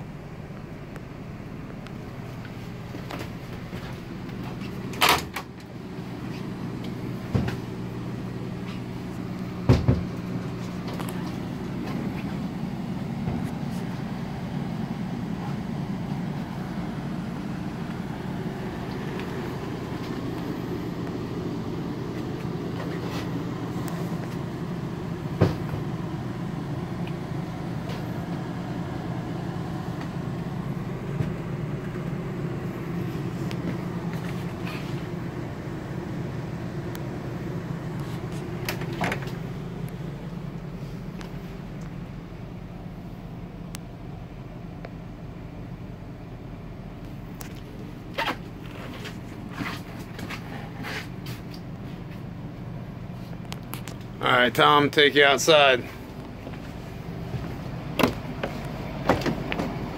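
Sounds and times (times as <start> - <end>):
low mechanical hum: 0.0 - 59.9
footsteps and handling knocks: 55.8 - 59.9.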